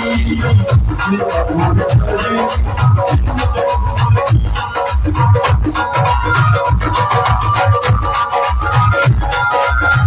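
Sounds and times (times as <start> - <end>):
hand drum beat: 0.0 - 10.0
keyboard melody: 0.0 - 10.0.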